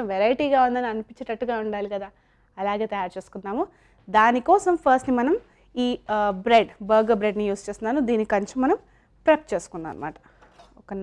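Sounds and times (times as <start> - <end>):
woman speaking: 0.0 - 10.2, 10.8 - 11.0.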